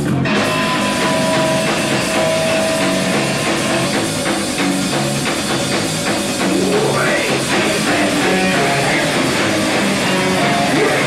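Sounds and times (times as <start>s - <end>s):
distorted electric guitar: 0.0s - 11.0s
drums: 0.0s - 11.0s.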